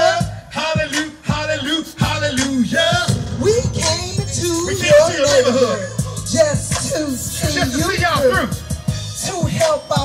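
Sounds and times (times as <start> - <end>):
hip-hop beat with bass line: 0.0 - 10.0
man rapping: 0.0 - 10.0.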